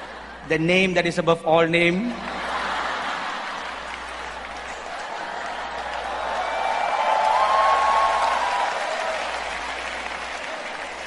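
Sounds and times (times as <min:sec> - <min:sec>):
large audience applauding: 0:02.3 - 0:11.0.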